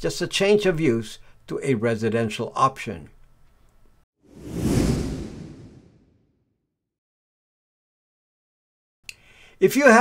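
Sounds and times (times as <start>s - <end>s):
whoosh sound effect: 4.3s - 6.2s.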